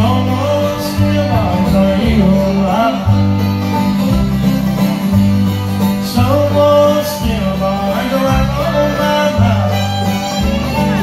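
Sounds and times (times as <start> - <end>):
banjo: 0.0 - 11.0
fiddle: 0.0 - 11.0
guitar: 0.0 - 11.0
upright bass: 0.0 - 11.0.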